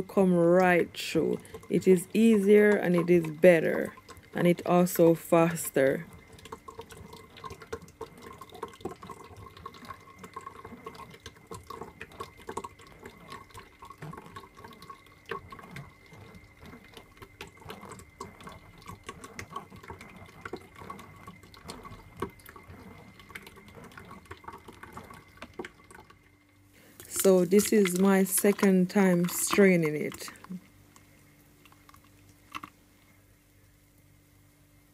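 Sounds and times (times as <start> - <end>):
liquid sloshing and dripping: 0.0 - 34.0
faint steady hum: 0.0 - 34.9.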